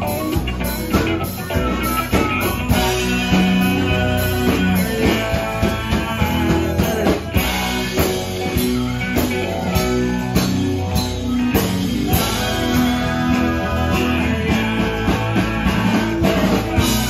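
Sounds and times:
acoustic guitar: 0.0s - 17.0s
electric bass: 0.0s - 17.0s
electric guitar: 0.0s - 17.0s
steady drum beat: 0.0s - 17.0s
voices singing together: 2.1s - 17.0s.

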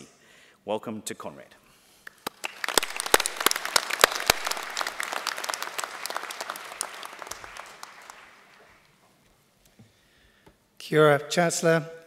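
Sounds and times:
audience applauding: 2.1s - 9.0s.

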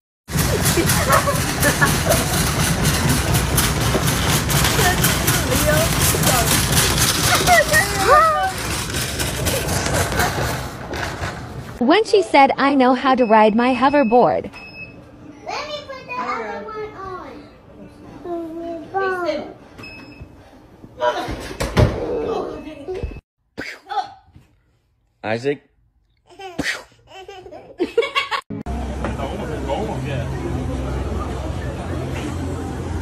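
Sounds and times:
moving walkway rumble: 0.3s - 11.8s
noisy sound: 0.3s - 14.2s.

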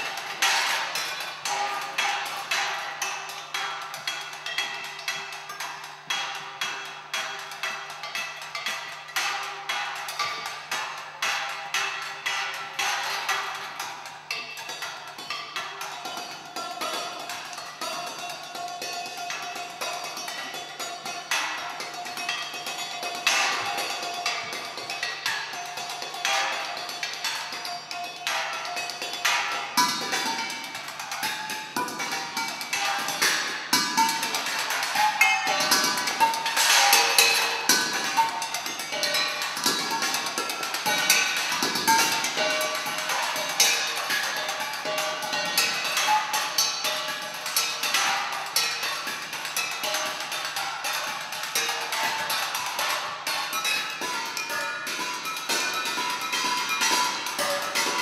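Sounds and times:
quick percussion strikes: 0.0s - 58.0s.

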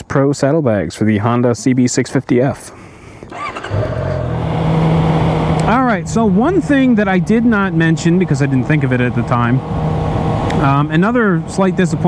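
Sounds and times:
motorcycle engine running: 3.3s - 12.0s.

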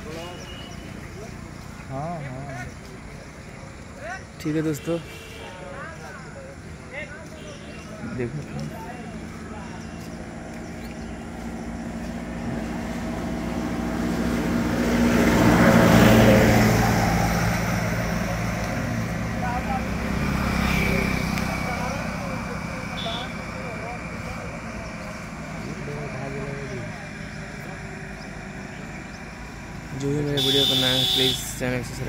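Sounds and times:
quieter vehicle passing: 0.0s - 32.0s
vehicle passing by: 5.6s - 32.0s.

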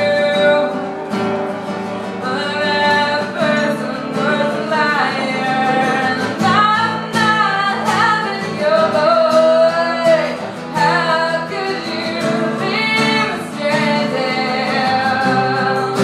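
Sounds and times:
woman singing: 0.0s - 1.1s, 2.1s - 16.0s
acoustic guitar: 0.0s - 16.0s.

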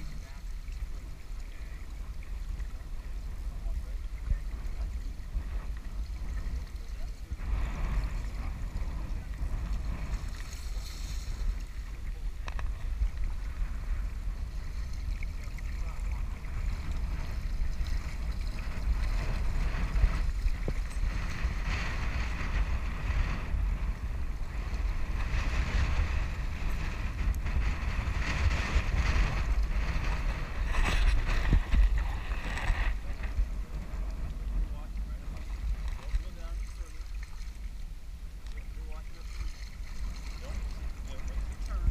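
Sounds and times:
rushing river water: 0.0s - 41.9s
wind buffeting microphone: 0.0s - 41.9s.

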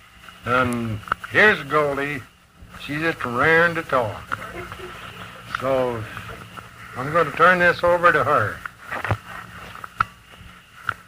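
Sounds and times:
faint tape recording hum: 0.0s - 11.0s.

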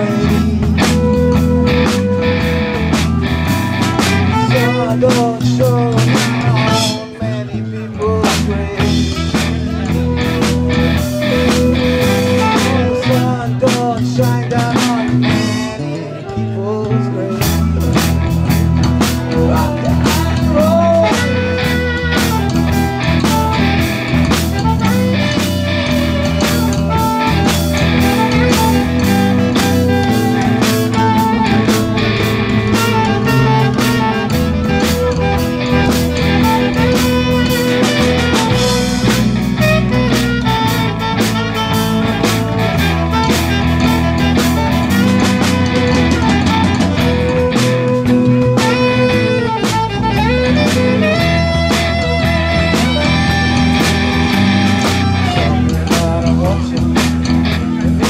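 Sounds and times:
acoustic guitar: 0.0s - 58.0s
bass guitar: 0.0s - 58.0s
drum kit: 0.0s - 58.0s
keyboard: 0.0s - 58.0s.

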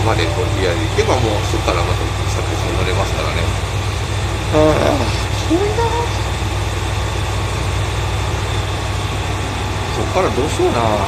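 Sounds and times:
faint high whine: 0.0s - 7.2s
train machinery humming: 0.0s - 11.0s.

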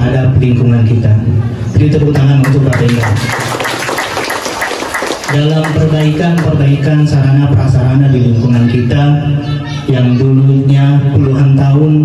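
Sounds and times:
audience applauding: 2.4s - 6.6s.

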